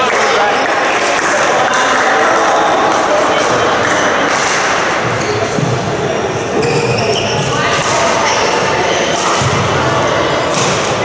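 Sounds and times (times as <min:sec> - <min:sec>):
echoing murmur of voices: 0:00.0 - 0:11.0.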